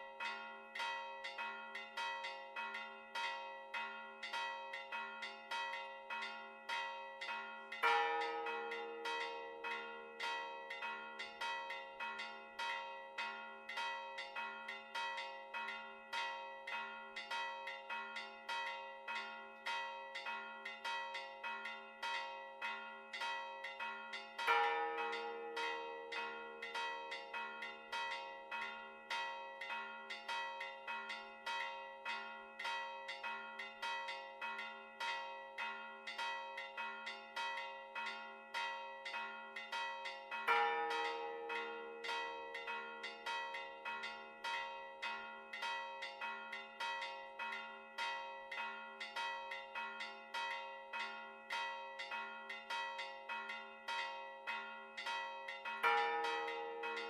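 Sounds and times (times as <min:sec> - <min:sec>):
church bells pealing: 0:00.0 - 0:57.0.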